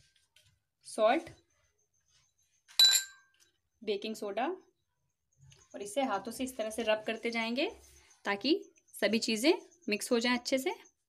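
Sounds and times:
glass bowl clinking against dish: 2.8 - 3.3.

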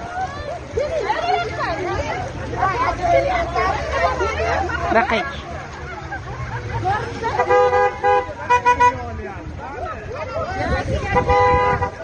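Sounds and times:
people's raised voices: 0.0 - 12.0
car horn honking: 7.3 - 9.1, 11.1 - 12.0.

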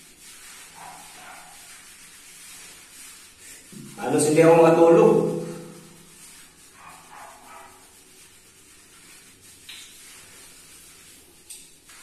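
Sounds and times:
hands scrubbing lather in hair: 0.0 - 12.0.

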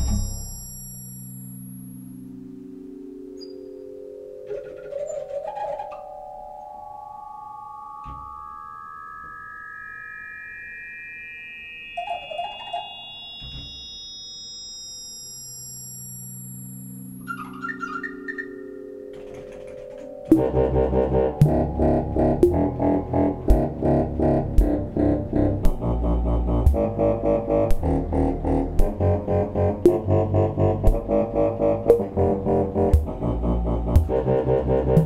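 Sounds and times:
rising electronic tones: 0.0 - 19.1, 19.9 - 35.0.

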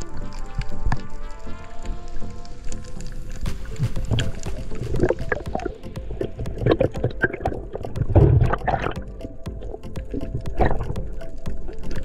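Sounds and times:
low underwater rumble: 0.0 - 12.0
music with sustained chords: 0.0 - 12.0
small crackling clicks: 0.0 - 12.0.

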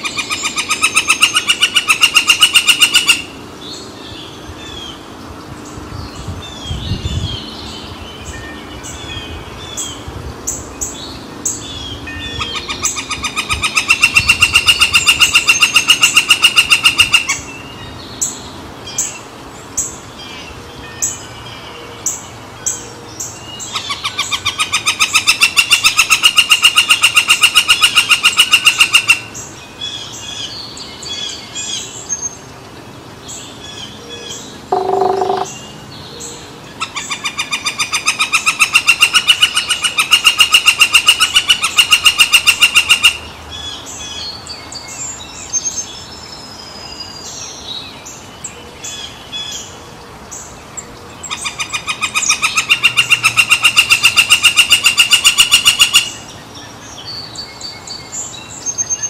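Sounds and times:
woodpecker calling: 0.0 - 3.4, 11.5 - 17.8, 23.5 - 31.9, 33.6 - 44.3, 51.2 - 56.4
sharp bird call notes: 34.7 - 35.7.

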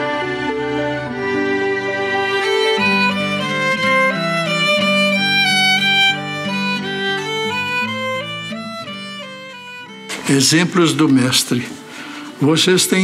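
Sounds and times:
acoustic guitar accompaniment: 0.0 - 13.0
violin melody: 0.0 - 13.0.

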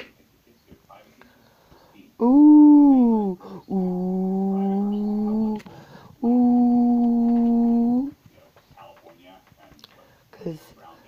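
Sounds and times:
person singing long steady notes: 2.2 - 8.1.

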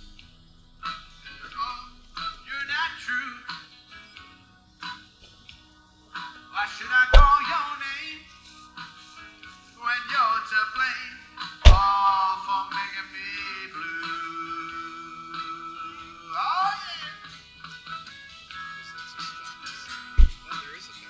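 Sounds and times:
sharp drum hit: 7.2 - 7.4, 11.7 - 11.9, 20.2 - 20.4.

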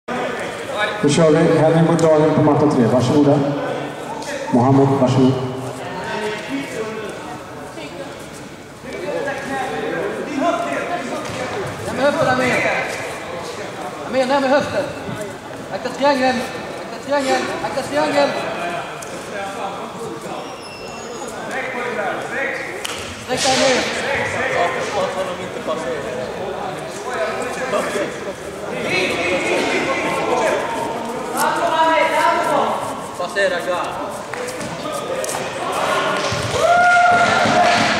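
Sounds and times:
men calling out and talking: 0.1 - 37.9.

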